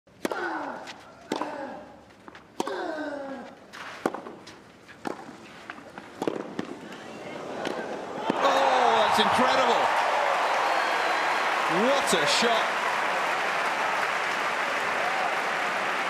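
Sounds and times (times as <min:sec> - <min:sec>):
racket hitting ball: 0:03.8 - 0:06.8
crowd noise: 0:05.9 - 0:16.0.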